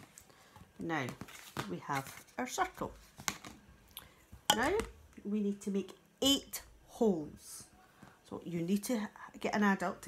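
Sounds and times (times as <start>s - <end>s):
woman speaking: 0.8s - 3.0s, 4.5s - 10.0s.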